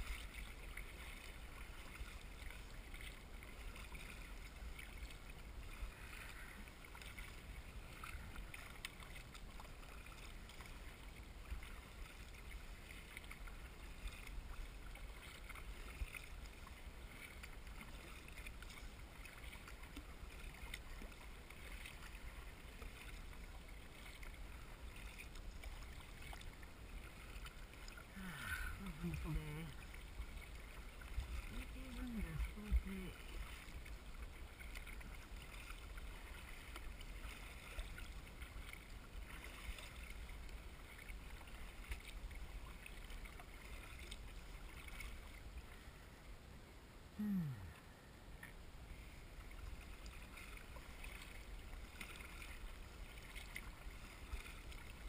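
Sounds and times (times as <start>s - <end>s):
water splashing along kayak: 0.0s - 55.0s
person's wordless voice: 28.1s - 29.8s, 31.5s - 33.3s, 47.2s - 47.8s.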